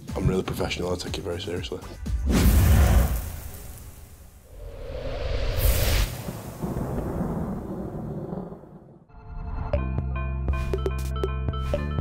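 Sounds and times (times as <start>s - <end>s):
rising whoosh: 2.2s - 8.8s.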